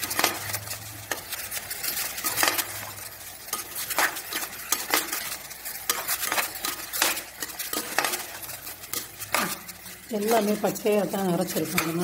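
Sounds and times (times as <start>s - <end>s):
ladle scraping a metal pan: 0.0s - 12.0s
sizzle of frying: 0.0s - 12.0s.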